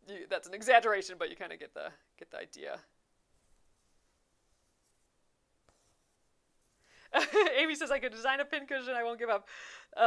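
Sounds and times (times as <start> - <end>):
fabric and thread rustling: 3.1 - 8.0.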